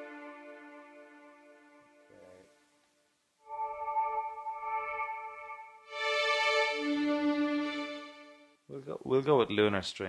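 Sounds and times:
synthesized strings chord: 0.0 - 2.4, 3.4 - 8.6.

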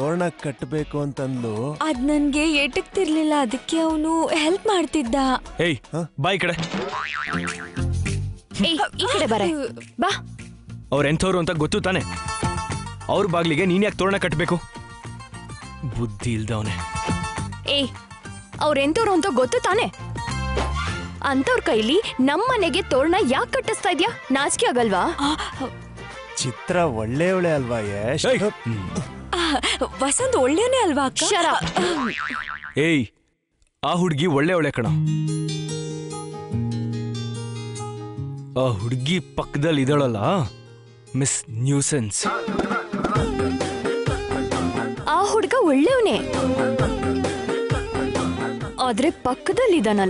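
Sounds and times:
wobbling boing tone: 6.9 - 7.9, 31.9 - 32.8.

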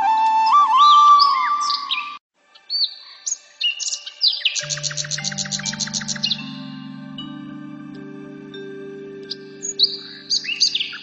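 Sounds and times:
flute music: 0.0 - 2.2, 4.6 - 11.0
songbird chirps and whistles: 0.0 - 11.0
fast bird trill: 4.5 - 6.6, 9.3 - 11.0
soft sustained music chords: 4.6 - 11.0.

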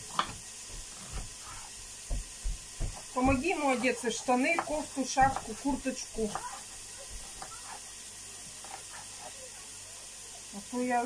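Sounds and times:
carrots sizzling in a pan: 0.0 - 11.0.

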